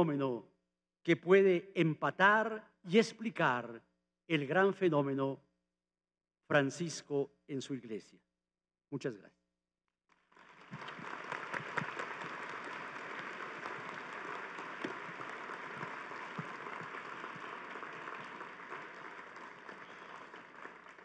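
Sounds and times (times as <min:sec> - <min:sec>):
audience applauding: 0:10.1 - 0:21.0.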